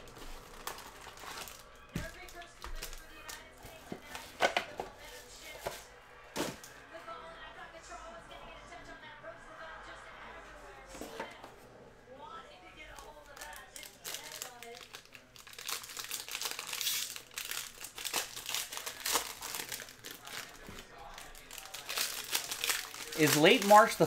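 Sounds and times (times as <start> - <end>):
foil wrappers crinkling and tearing: 0.0 - 4.5, 12.9 - 24.0.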